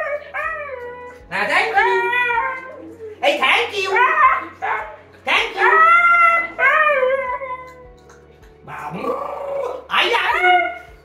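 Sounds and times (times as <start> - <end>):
dog howling: 0.0 - 8.0, 8.6 - 11.0.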